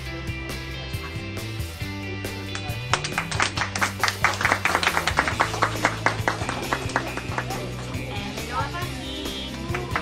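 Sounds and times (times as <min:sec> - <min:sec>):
background music with low notes: 0:00.0 - 0:10.0
people clapping: 0:02.4 - 0:08.4, 0:09.3 - 0:10.0.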